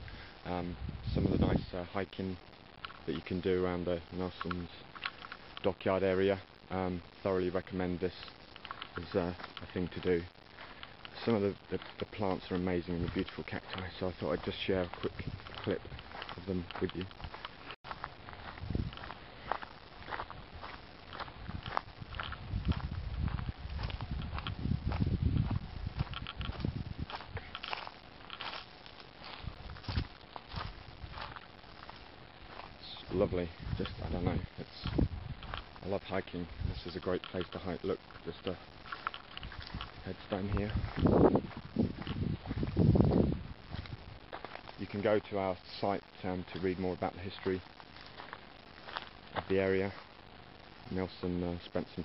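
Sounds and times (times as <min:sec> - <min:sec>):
scuffing crunch: 0:06.8 - 0:50.2
flip-flop footsteps on dirt trail: 0:07.3 - 0:50.2
dull rumble: 0:13.0 - 0:28.4.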